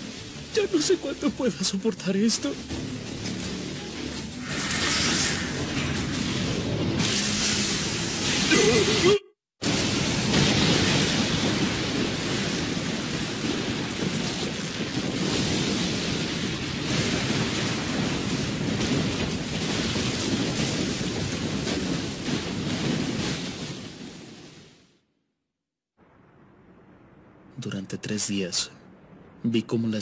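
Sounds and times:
heavy rain falling: 0.0s - 24.8s.

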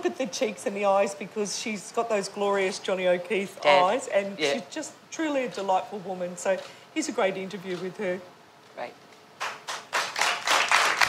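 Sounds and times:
hands clapping: 9.4s - 11.0s.

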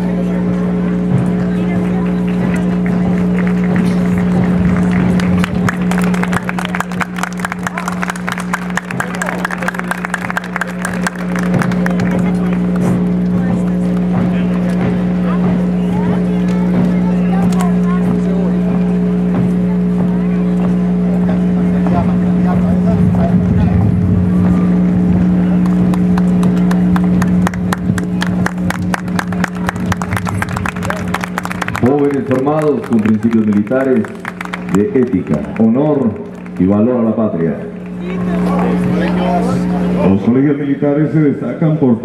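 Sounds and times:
steady low hum: 0.0s - 42.0s.

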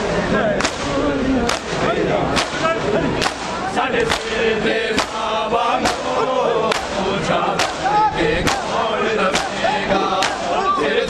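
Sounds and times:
crowd slapping chests: 0.0s - 11.0s
crowd voices: 0.0s - 11.0s.

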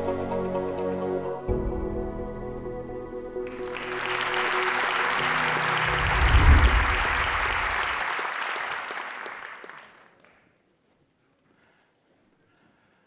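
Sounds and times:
intro music: 0.8s - 8.0s
audience applause: 3.5s - 10.2s
deep low swell: 3.6s - 8.1s.

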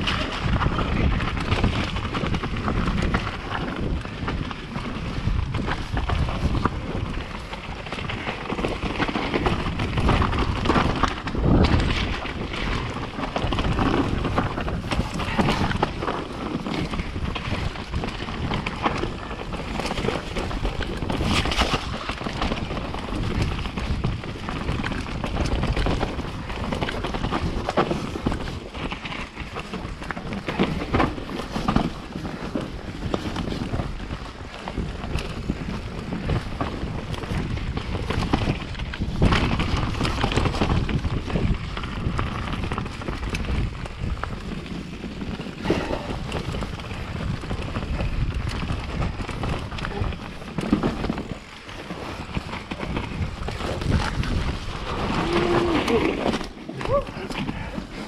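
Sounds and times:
bike knocking and rattling: 0.0s - 58.0s
tyre noise on dirt and rock: 0.0s - 58.0s
wind buffeting microphone: 0.0s - 58.0s.

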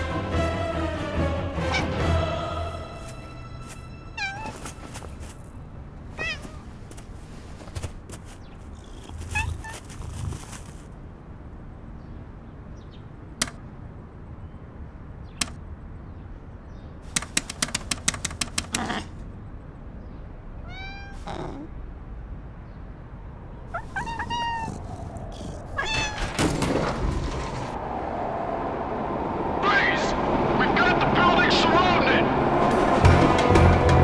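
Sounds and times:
cat meowing: 1.7s - 2.0s, 4.2s - 5.0s, 6.1s - 6.7s, 8.7s - 10.6s, 20.6s - 21.7s, 23.7s - 26.5s
rushing noise: 24.7s - 34.0s.

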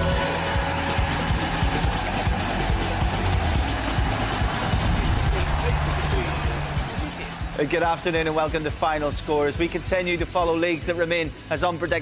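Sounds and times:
up-tempo sports theme music: 0.0s - 12.0s.

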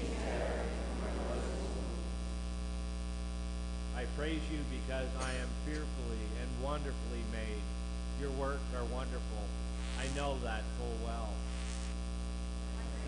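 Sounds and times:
person reading aloud: 0.0s - 2.0s
electrical mains hum: 0.0s - 13.0s.

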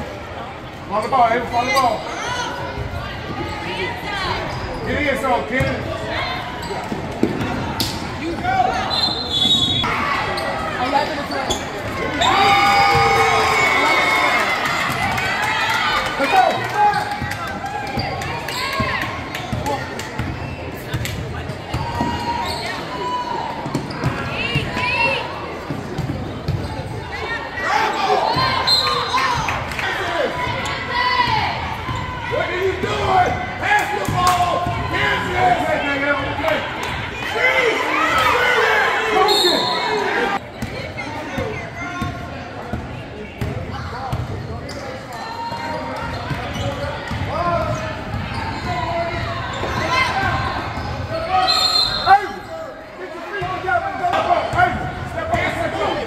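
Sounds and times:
echoing voices and shouts: 26.7s - 56.0s.

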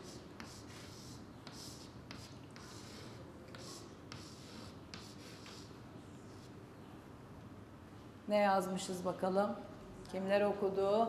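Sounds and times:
chalk tapping on chalkboard: 0.0s - 5.7s
chalk scratching on chalkboard: 0.0s - 6.6s.

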